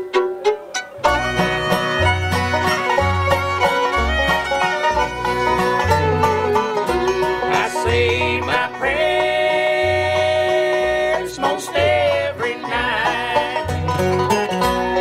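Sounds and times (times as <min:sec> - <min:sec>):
banjo: 0:00.0 - 0:15.0
fiddle: 0:00.0 - 0:15.0
low bass line: 0:00.0 - 0:15.0
guitar: 0:00.2 - 0:15.0.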